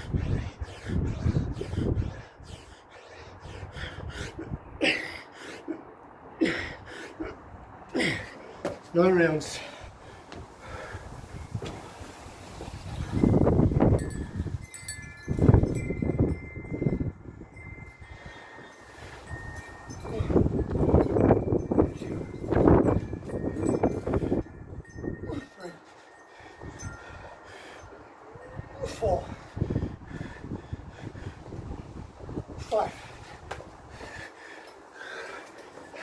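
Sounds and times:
man breathing hard: 0.0s - 8.7s, 9.4s - 11.5s, 12.8s - 36.0s
high steady ringing tones: 12.9s - 29.3s.

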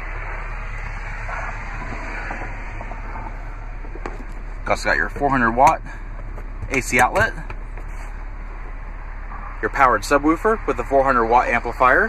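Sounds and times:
background rumble and hiss: 0.0s - 12.0s
constant low hum: 0.0s - 12.0s.

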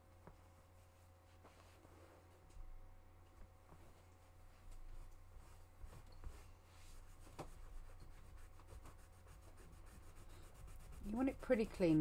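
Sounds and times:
steady low hum: 0.0s - 12.0s
cloth rubbing on paper clay: 0.2s - 2.4s, 3.7s - 12.0s.

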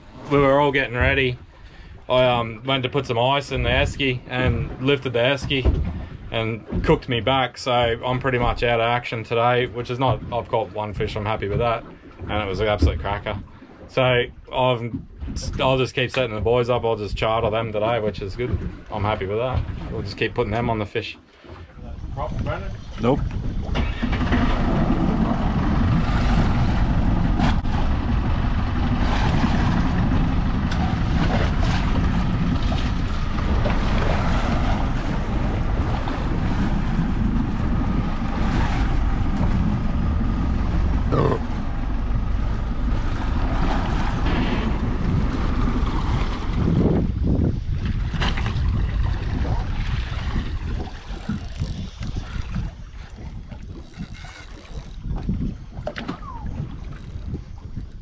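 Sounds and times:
wind buffeting microphone: 0.0s - 20.8s, 21.7s - 58.0s.

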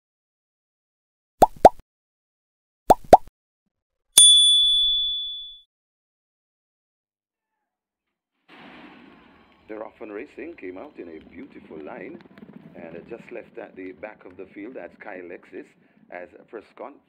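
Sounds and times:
bright bell ding: 4.2s - 5.6s.

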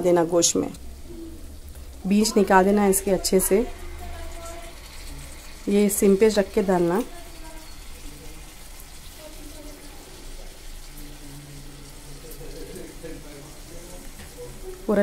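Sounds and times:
liquid trickling into pot: 0.8s - 15.0s.

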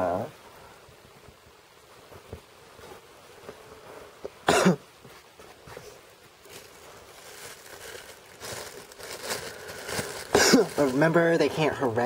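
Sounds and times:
person coughing: 4.4s - 4.8s, 10.3s - 10.9s.

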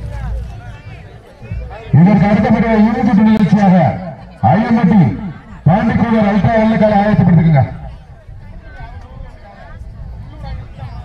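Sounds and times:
person speaking loudly: 1.9s - 8.0s.

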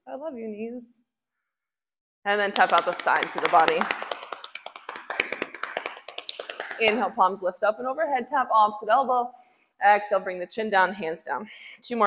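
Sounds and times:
hands tapping on body: 2.6s - 6.8s.

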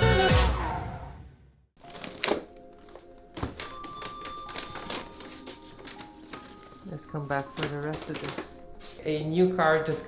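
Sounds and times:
faint background music: 1.8s - 10.0s.

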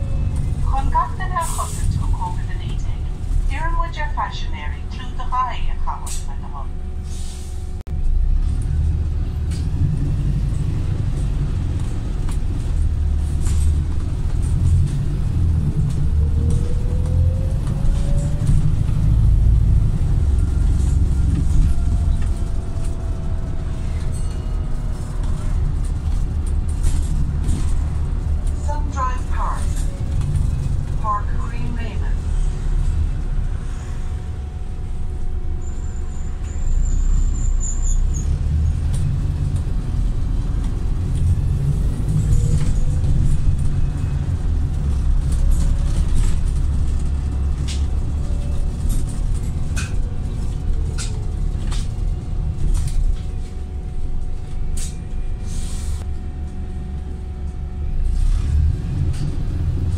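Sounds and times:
bus diesel engine rumble: 0.0s - 59.9s
rising engine whine: 6.6s - 59.9s.

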